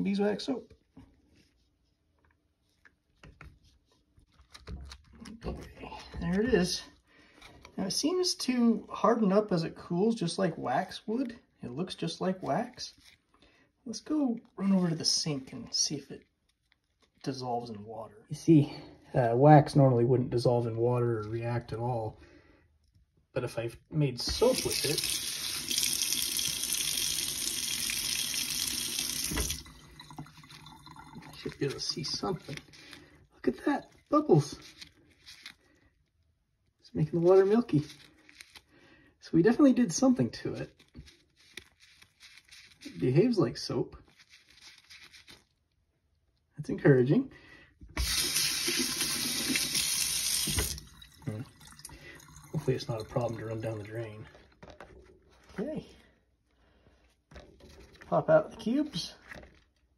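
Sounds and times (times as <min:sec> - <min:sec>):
tap water running into sink: 0:24.3 - 0:31.4, 0:48.0 - 0:53.6.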